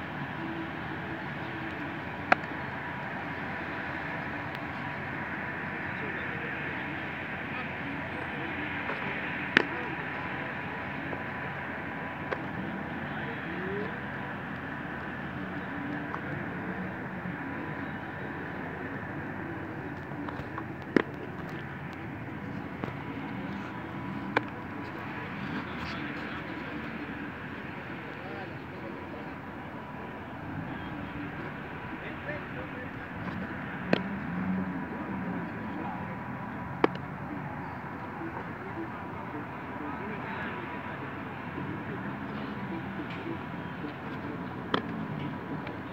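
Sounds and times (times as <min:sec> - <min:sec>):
faint voices: 0:00.0 - 0:45.9.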